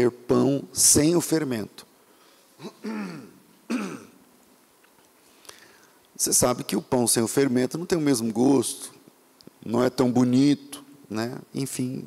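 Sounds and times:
man clearing his throat: 0:02.6 - 0:04.2.

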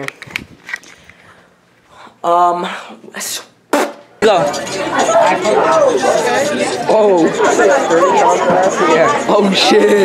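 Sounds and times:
boys talking and calling out: 0:02.0 - 0:10.0.

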